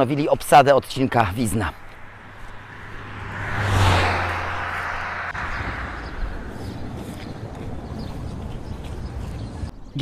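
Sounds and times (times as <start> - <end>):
outdoor background: 0.0 - 10.0
vehicle passing close by: 1.4 - 9.7.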